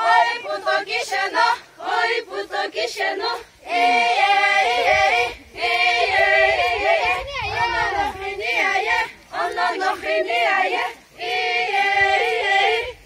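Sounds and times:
women singing unaccompanied: 0:00.0 - 0:13.0.

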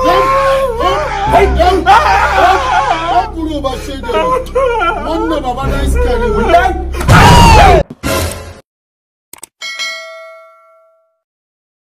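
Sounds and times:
bell-like ding: 0:09.6 - 0:11.2.

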